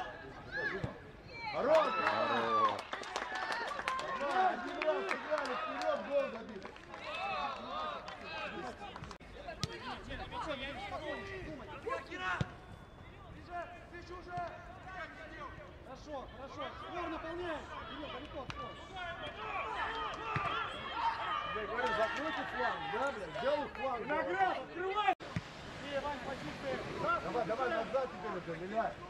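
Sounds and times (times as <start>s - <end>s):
distant players shouting: 7.0s - 25.2s.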